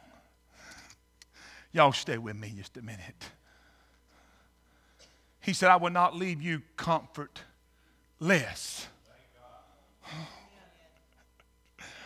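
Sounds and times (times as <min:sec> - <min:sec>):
faint breathing: 0:00.0 - 0:01.8, 0:03.3 - 0:05.4, 0:07.7 - 0:08.1, 0:11.8 - 0:12.0
man breathing sharply into microphone: 0:00.5 - 0:01.7.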